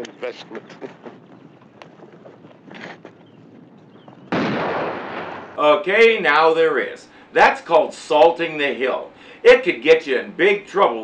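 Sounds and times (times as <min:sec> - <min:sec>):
loud explosion blast: 0:04.3 - 0:05.6.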